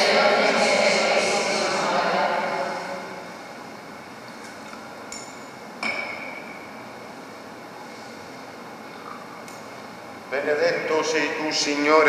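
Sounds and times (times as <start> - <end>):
voice in reverberant church: 0.0 - 3.5, 10.3 - 12.0.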